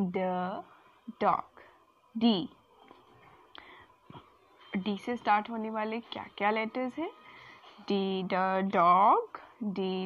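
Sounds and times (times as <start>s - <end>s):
woman speaking: 0.0s - 1.6s, 2.2s - 2.6s, 4.8s - 7.2s, 7.8s - 10.0s
woman breathing faintly: 3.1s - 4.3s.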